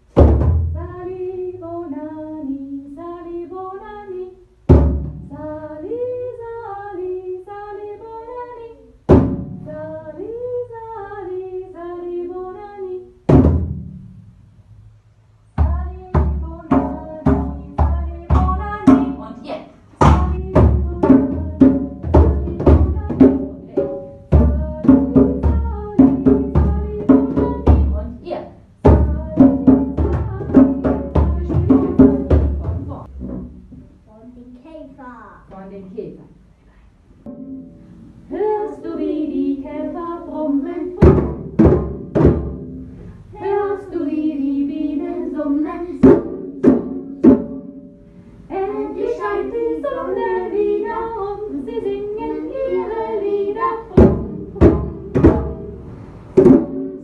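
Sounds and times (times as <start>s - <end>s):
children singing: 43.4s - 46.1s, 48.5s - 55.1s.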